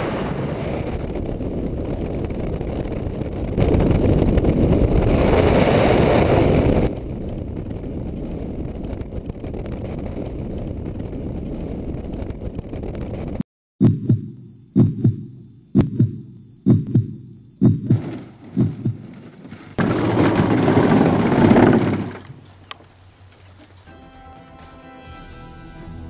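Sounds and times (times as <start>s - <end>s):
engine and wind noise: 0.0s - 13.4s, 18.0s - 23.1s
heartbeat sound effect: 13.8s - 19.1s
wheels skidding on grass: 18.0s - 23.9s.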